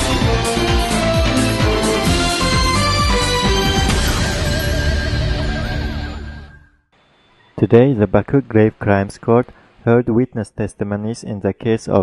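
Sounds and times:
news intro theme music: 0:00.0 - 0:06.7.

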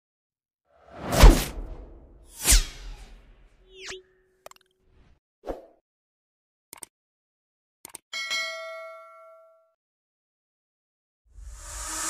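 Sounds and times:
whoosh sound effect: 0:00.9 - 0:03.2.

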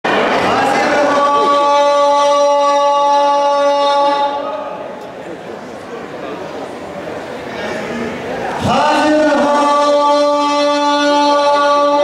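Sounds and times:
indistinct voices in hall: 0:00.1 - 0:12.0
man singing long note: 0:00.5 - 0:04.7, 0:08.6 - 0:12.0.

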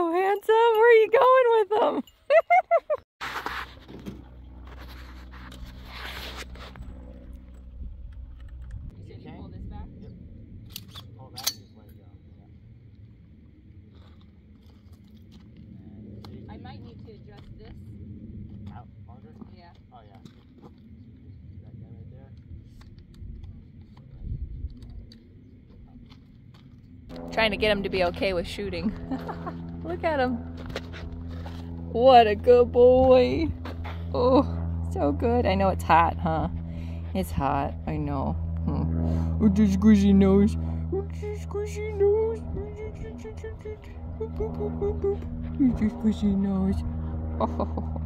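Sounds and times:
wind rumble on microphone: 0:03.7 - 0:48.0.

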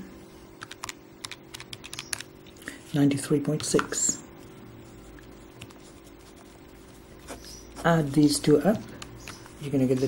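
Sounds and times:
calculator buttons clicking: 0:00.6 - 0:02.2.

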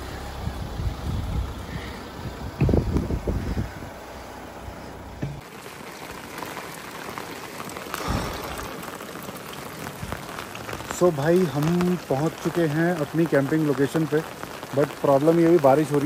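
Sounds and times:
low rumble: 0:00.0 - 0:05.4
heavy rain falling: 0:00.0 - 0:16.0.

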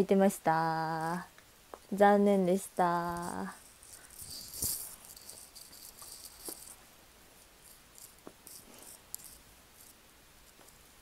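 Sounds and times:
faint rustling of earphone handling: 0:03.1 - 0:06.8.

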